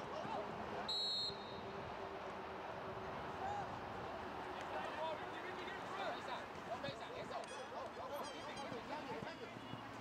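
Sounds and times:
open-air field noise: 0:00.0 - 0:10.0.

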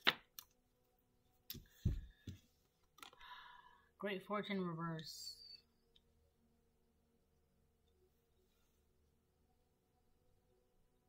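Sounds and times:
soft thump on cloth table: 0:01.6 - 0:02.4.

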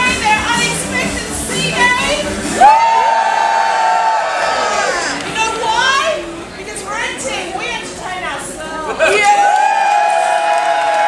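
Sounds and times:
woman speaking: 0:00.0 - 0:02.2, 0:05.4 - 0:09.3
audience noise: 0:00.0 - 0:11.0.

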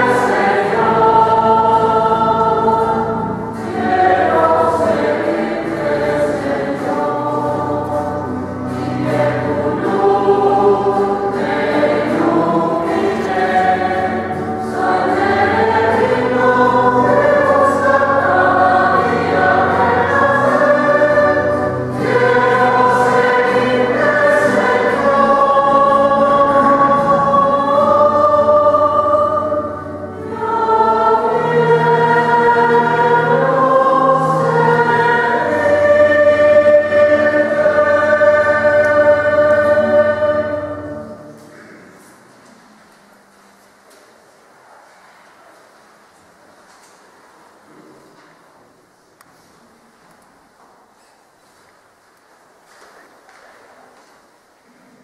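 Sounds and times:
choir singing a hymn: 0:00.0 - 0:42.3.

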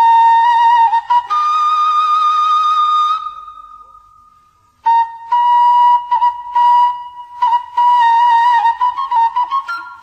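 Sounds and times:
flute music: 0:00.0 - 0:10.0.

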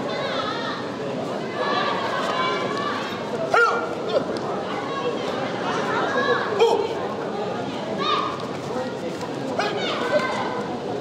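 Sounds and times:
crowd chatter: 0:00.0 - 0:11.0
short yelled shouts: 0:01.8 - 0:04.3.

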